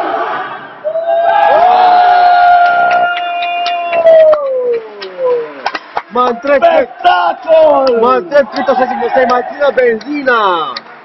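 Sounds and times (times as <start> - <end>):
sharp claps or knocks: 2.6 - 6.2, 7.8 - 8.2, 9.2 - 10.9
man shouting a held vowel: 6.2 - 9.8.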